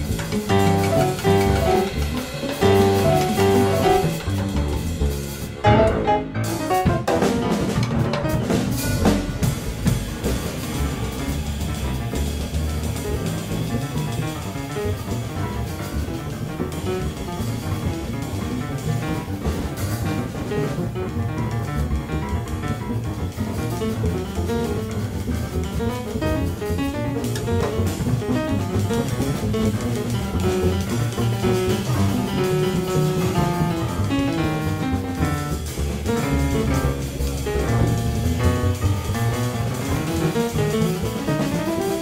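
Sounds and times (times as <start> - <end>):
drum kit with cymbals: 0.0 - 42.0
grand piano: 0.0 - 42.0
upright double bass: 0.0 - 42.0.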